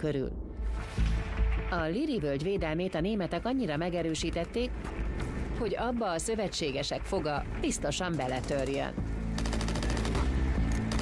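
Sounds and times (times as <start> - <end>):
machine-gun fire: 9.4 - 11.0.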